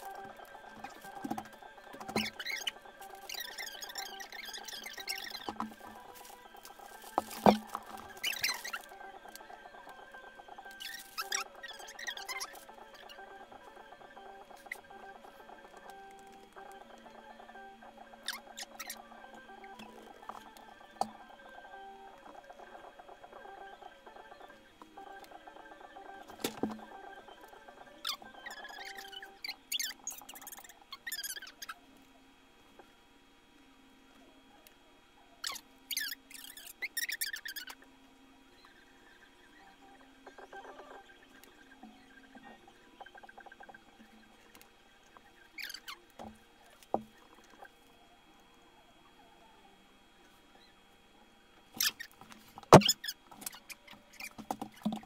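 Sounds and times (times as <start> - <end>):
paper and cardboard rustling: 0.0 - 9.4
faint steady tones humming: 0.0 - 55.0.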